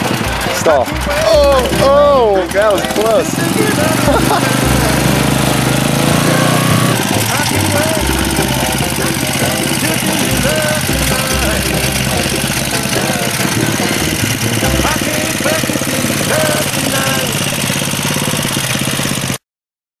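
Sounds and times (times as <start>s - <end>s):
person talking: 0.0s - 17.5s
small engine running: 0.0s - 19.4s.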